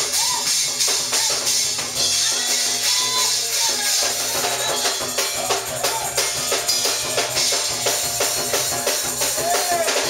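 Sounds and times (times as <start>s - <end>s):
church praise music: 0.0s - 10.0s
drum kit playing fast beat: 0.0s - 10.0s.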